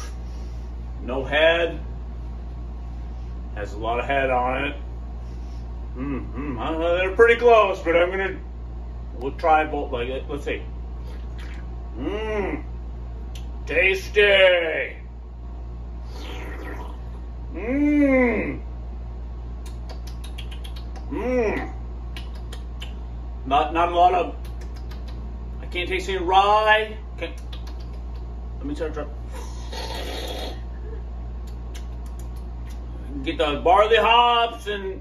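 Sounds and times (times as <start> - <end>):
low room hum: 0.0 - 35.0.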